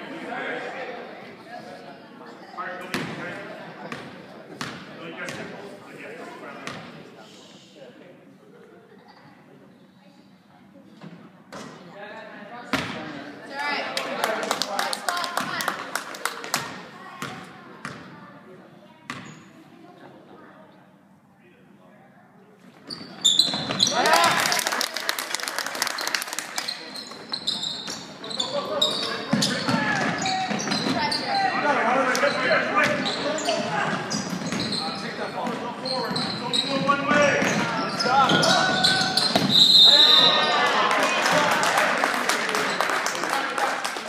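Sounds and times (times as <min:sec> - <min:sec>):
sneakers squeaking on hardwood: 0:19.1 - 0:19.5, 0:22.8 - 0:24.0, 0:26.9 - 0:31.6, 0:32.2 - 0:40.4.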